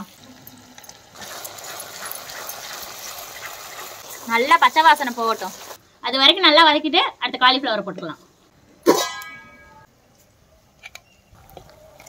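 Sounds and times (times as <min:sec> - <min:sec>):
food sizzling in oil: 0:00.0 - 0:05.8.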